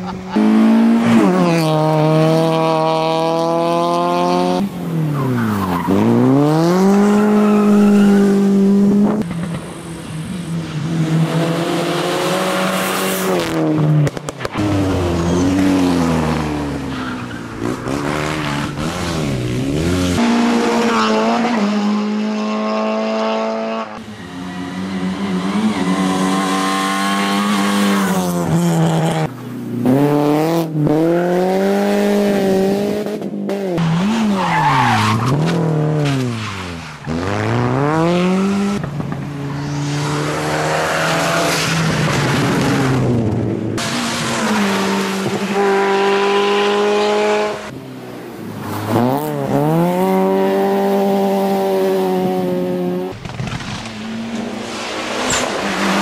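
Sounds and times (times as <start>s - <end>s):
rally car engines revving: 0.0s - 56.0s
tyre squeal: 15.1s - 15.7s.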